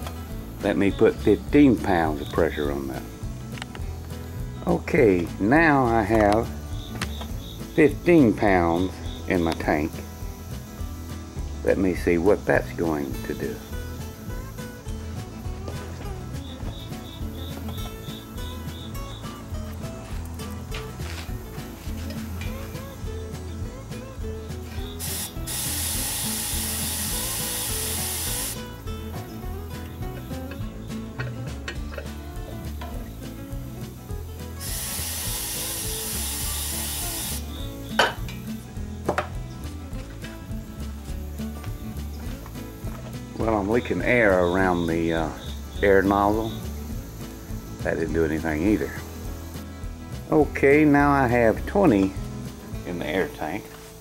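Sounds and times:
background music: 0.0s - 54.0s
compressed air hissing from nozzle: 24.6s - 29.0s, 33.0s - 38.6s.

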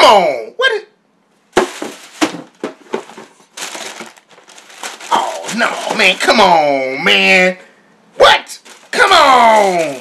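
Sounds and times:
packaging crinkling: 1.6s - 6.4s, 8.6s - 10.0s.

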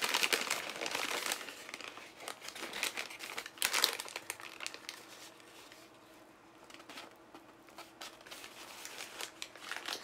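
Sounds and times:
packaging crinkling: 0.0s - 5.9s, 6.6s - 10.0s.

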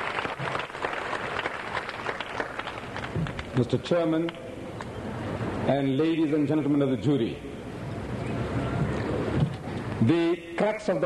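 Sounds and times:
audience applauding: 0.0s - 3.6s.

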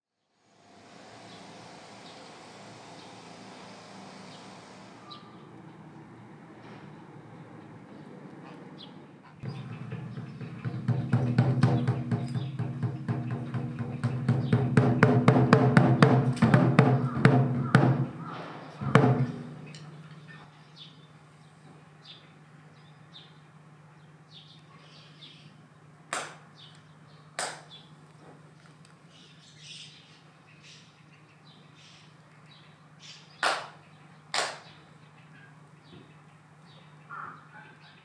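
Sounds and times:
faint outdoor background: 0.1s - 38.0s
drum strikes: 9.4s - 19.8s
music with low tones: 9.4s - 20.5s
sharp hand claps with echo: 26.1s - 26.5s, 27.4s - 27.8s, 33.4s - 34.8s.

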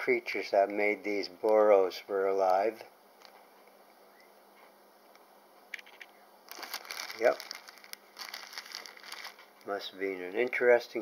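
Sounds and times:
plastic bag crinkling: 5.8s - 10.5s.

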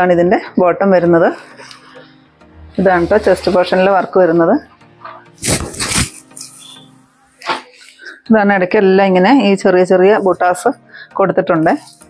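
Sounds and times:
faint background music: 0.0s - 12.0s
dress fabric swishing: 5.4s - 6.8s.

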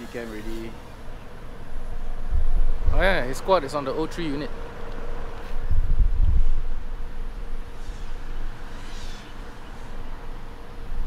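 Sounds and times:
drone motors buzzing: 7.3s - 11.0s.

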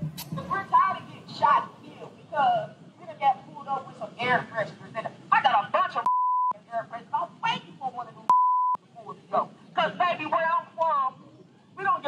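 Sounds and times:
censor bleeps: 6.1s - 6.6s, 8.3s - 8.8s.

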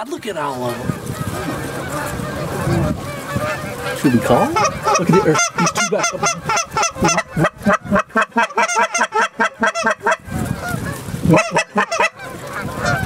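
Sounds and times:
goose call honks and clucks: 0.4s - 13.0s.

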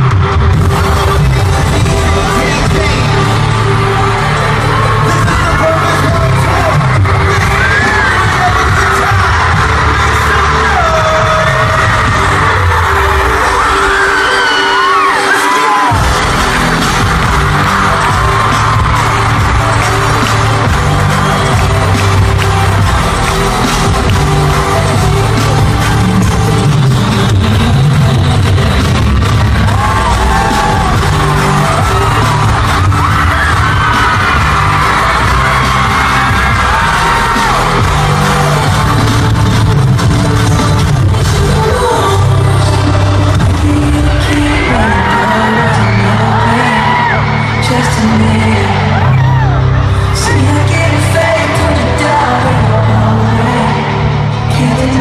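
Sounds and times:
fans screaming: 0.0s - 55.0s
live pop music over pa: 0.0s - 55.0s.

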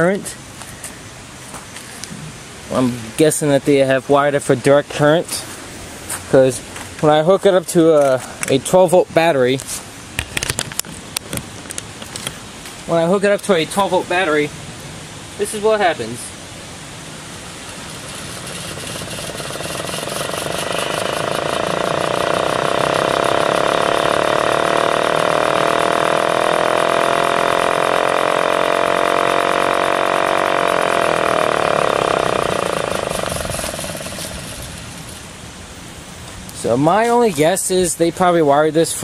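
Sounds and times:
siren winding up and down: 17.7s - 34.6s.

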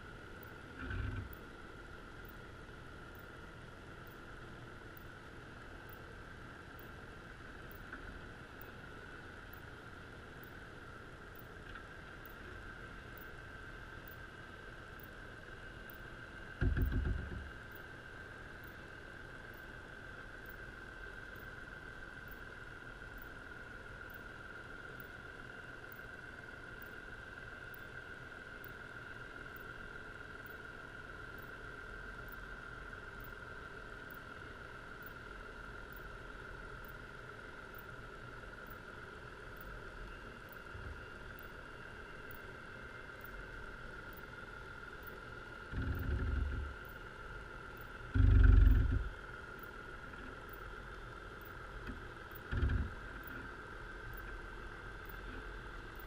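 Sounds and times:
steady underwater hum: 0.0s - 56.0s
dull low knocks: 16.6s - 17.5s, 45.7s - 46.8s, 48.1s - 49.1s, 51.9s - 53.0s.

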